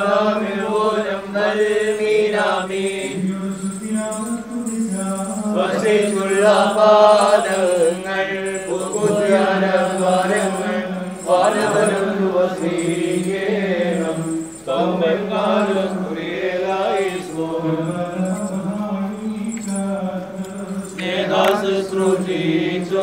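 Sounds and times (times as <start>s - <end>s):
chanted hymn: 0.0s - 23.0s.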